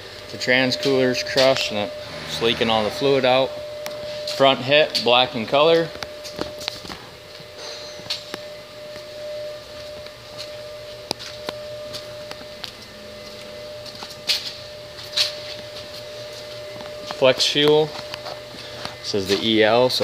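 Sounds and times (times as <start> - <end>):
room hum: 0.0 - 7.6.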